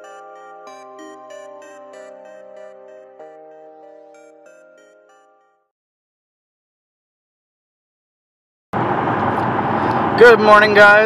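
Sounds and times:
car road and engine noise: 8.8 - 11.0.

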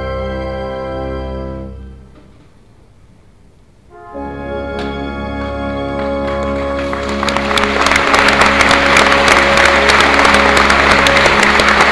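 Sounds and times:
orchestra and organ chord: 0.0 - 2.4, 3.9 - 11.9
audience applause: 5.9 - 11.9.

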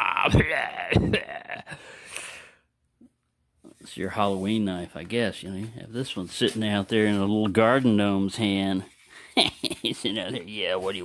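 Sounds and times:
man speaking: 0.0 - 1.5, 3.7 - 9.0, 9.8 - 11.0
man laughing breathily: 0.8 - 2.5, 9.1 - 10.4.

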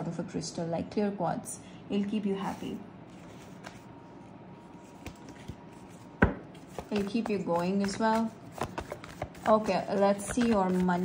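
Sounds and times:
deck of cards tapping on table: 6.2 - 8.0.

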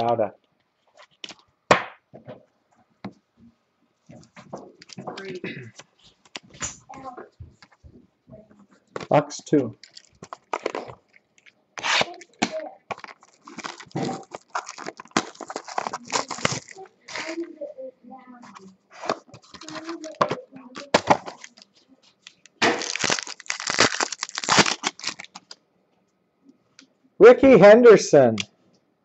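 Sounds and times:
plastic wrap and cardboard ripping: 9.8 - 11.1, 11.8 - 17.4, 18.9 - 25.6.

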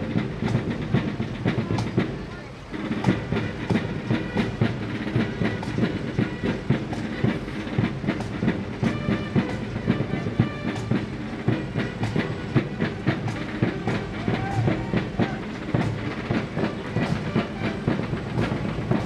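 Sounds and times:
marching band drums: 0.0 - 19.0.

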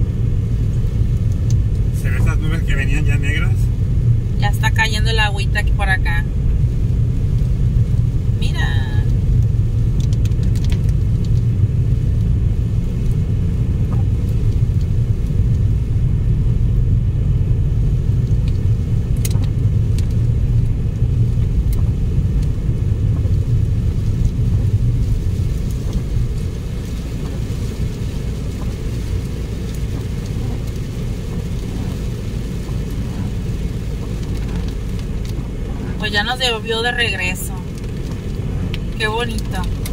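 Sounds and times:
car driving on wet road: 0.0 - 39.9.

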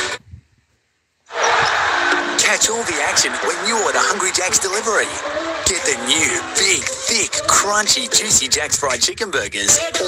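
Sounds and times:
arena crowd noise: 1.3 - 10.0.

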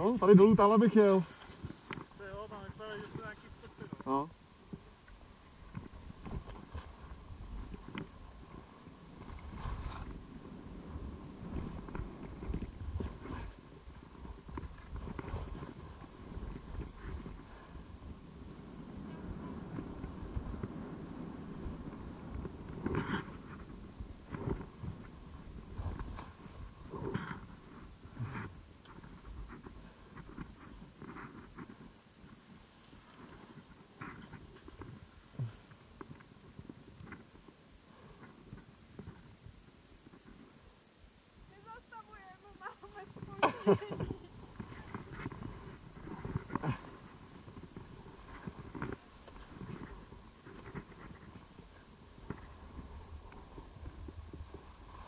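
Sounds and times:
skis scraping over snow: 0.0 - 39.4, 41.5 - 55.0
wind rumble on microphone: 1.4 - 37.4, 44.0 - 55.0.

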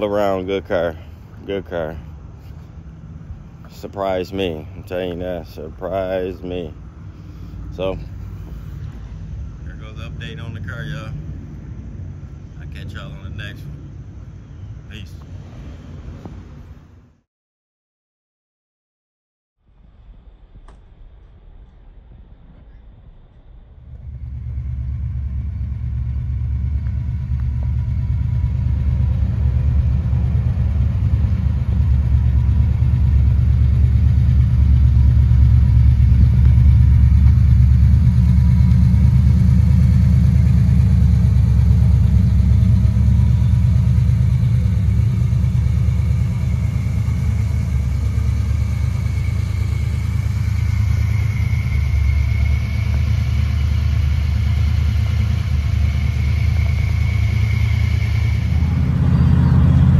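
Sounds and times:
car engine idling: 0.0 - 15.4, 20.0 - 59.9.

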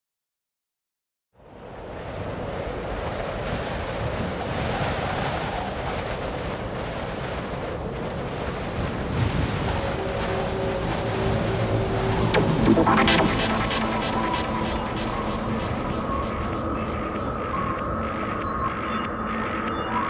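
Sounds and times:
rushing wind: 1.4 - 20.0.

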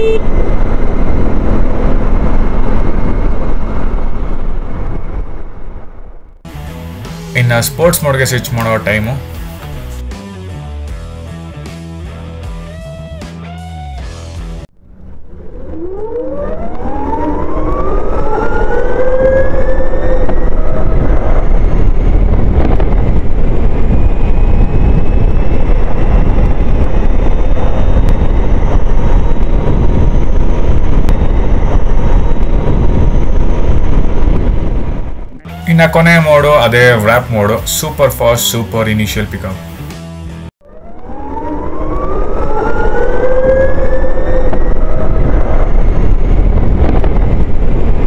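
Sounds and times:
wind rumble on microphone: 0.0 - 6.5, 14.8 - 35.4, 40.6 - 48.0
electric scooter drive whine: 0.0 - 7.3, 14.8 - 35.7, 40.6 - 48.0
guitar music: 6.5 - 14.6, 35.3 - 35.9.

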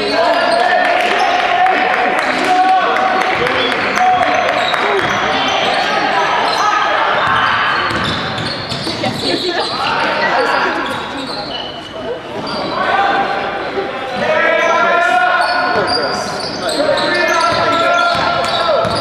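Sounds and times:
players calling out: 0.0 - 19.0
sneakers squeaking on wooden court: 3.4 - 12.8, 14.6 - 19.0
basketball dribbling: 7.2 - 9.2.

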